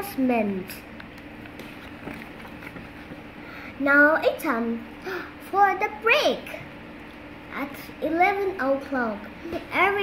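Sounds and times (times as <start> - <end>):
paper rustles of page turning: 1.4 - 3.0.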